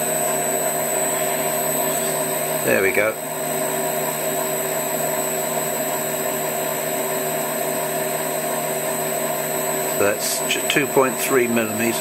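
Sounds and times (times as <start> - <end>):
lathe motor hum: 0.0 - 12.0.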